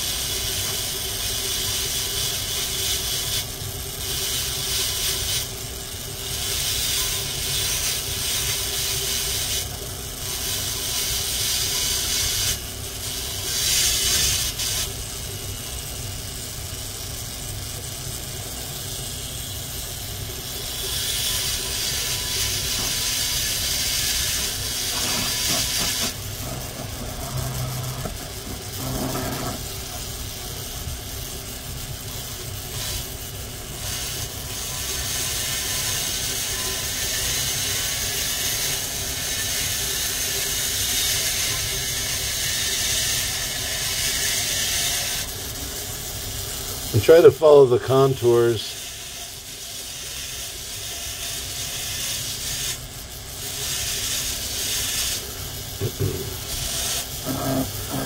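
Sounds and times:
rotary tool grinding stone: 0.0s - 58.0s
vacuum hiss: 7.3s - 43.6s, 53.2s - 58.0s.

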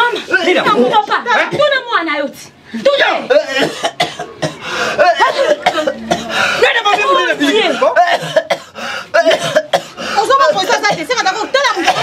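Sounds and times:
loud voices talking: 0.0s - 12.0s
coughing: 0.3s - 1.9s, 2.8s - 12.0s.

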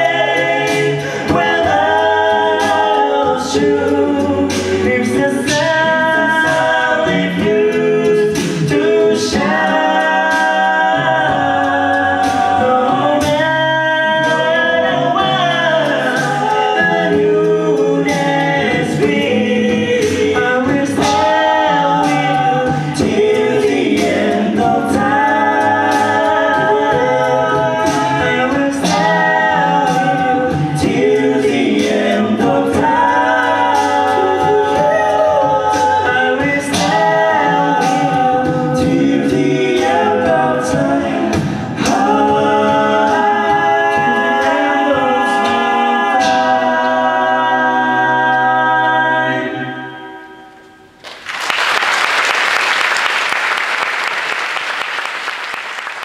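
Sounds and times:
male group singing in harmony: 0.0s - 50.4s.

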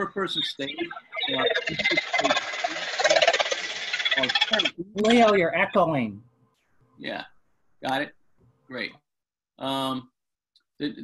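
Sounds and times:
distorted crackling voice: 0.0s - 6.1s.

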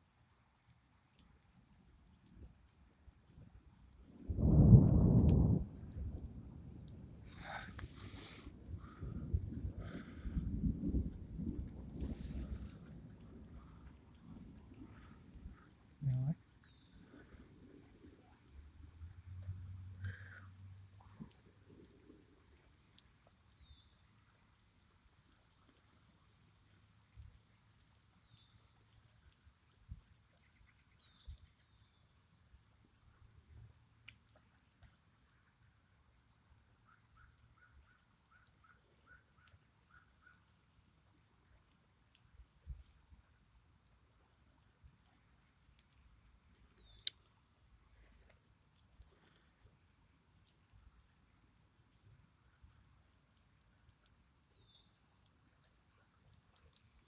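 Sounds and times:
faint birdsong chirps and trill: 16.5s - 17.6s, 22.9s - 24.4s, 27.9s - 29.2s, 30.2s - 32.4s, 36.8s - 40.7s, 46.5s - 47.4s, 50.1s - 51.1s, 54.3s - 57.0s.

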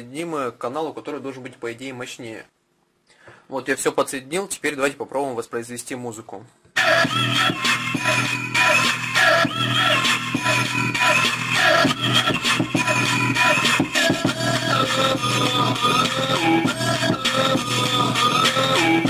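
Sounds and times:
music through a loudspeaker: 6.8s - 19.0s.

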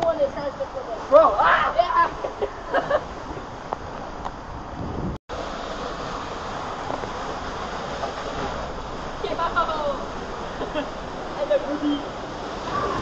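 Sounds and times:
water and air rushing: 0.0s - 13.0s.

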